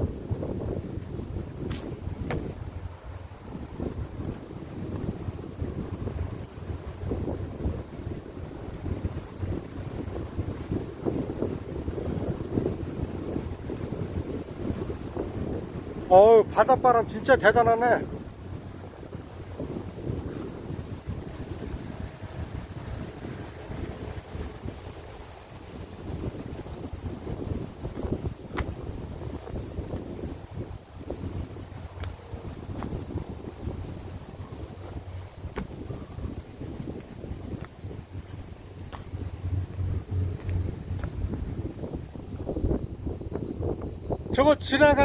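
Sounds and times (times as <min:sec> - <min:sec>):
wind buffeting microphone: 0:00.0 - 0:45.0
faint steady high tone: 0:35.8 - 0:44.8.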